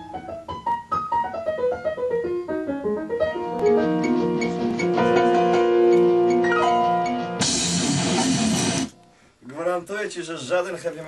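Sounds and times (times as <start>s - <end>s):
loud strummed guitar music: 3.7s - 9.0s
man speaking: 9.4s - 11.0s.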